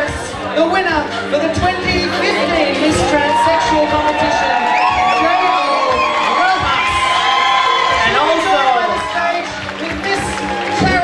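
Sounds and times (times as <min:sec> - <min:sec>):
audience cheering and whooping: 0:02.8 - 0:11.0.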